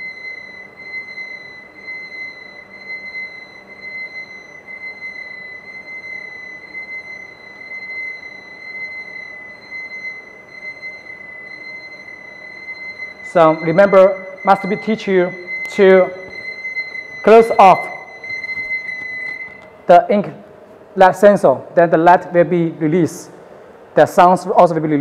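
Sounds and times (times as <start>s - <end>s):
high-pitched alarm buzzer: 0.0s - 19.6s.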